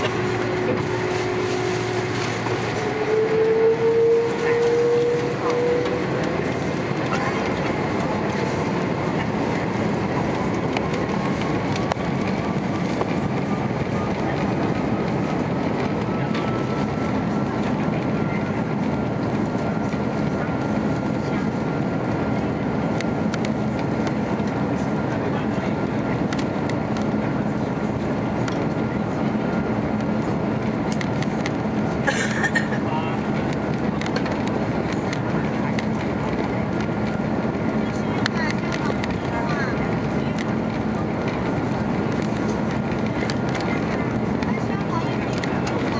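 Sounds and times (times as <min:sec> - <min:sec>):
jet engines whining: 0:00.0 - 0:45.9.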